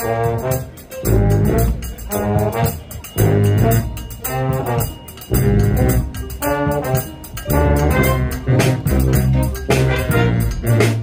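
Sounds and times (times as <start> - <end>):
brass band playing: 0.0 - 11.0.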